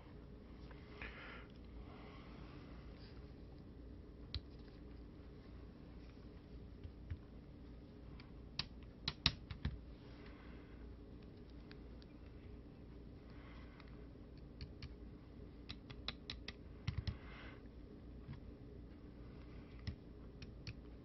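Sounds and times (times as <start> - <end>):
low room hum: 0.0 - 21.0
fingers tapping circuit board: 8.6 - 9.8.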